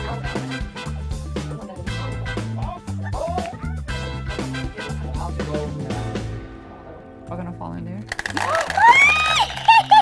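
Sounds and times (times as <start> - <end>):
low background music: 0.0 - 9.4
marbles clattering down plastic tube: 8.1 - 10.0
person exclaiming whoa: 8.4 - 9.5.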